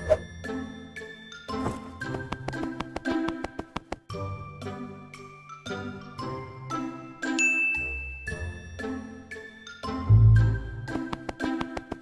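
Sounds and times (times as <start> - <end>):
tinkling chiming notes: 5.1 - 10.0
long high ding: 7.4 - 8.2.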